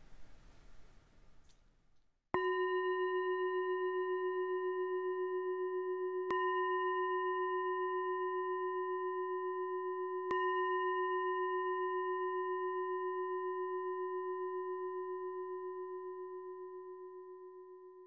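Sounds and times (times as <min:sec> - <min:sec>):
singing bowl ringing: 0:02.4 - 0:18.0.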